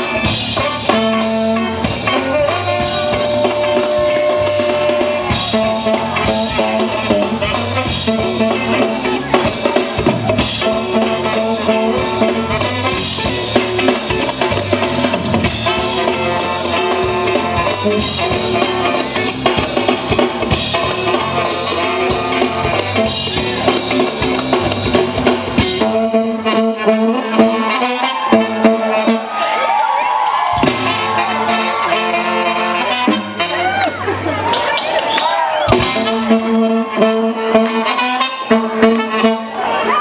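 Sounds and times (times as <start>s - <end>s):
drum kit: 0.0s - 39.9s
bass: 0.0s - 40.0s
trumpet and trombone: 0.0s - 40.0s.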